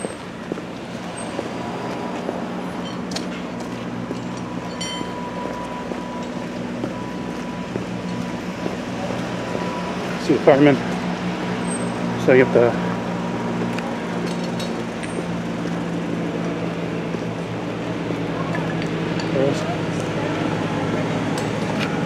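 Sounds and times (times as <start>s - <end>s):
fire engines idling: 0.0s - 22.0s.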